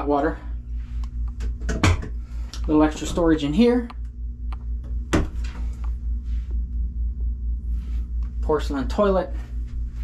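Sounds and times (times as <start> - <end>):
low pulsing hum: 0.0 - 10.0.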